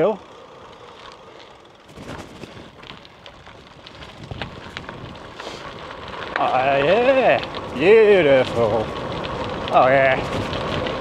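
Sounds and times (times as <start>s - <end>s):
bike tyres crunching on gravel: 0.0s - 11.0s.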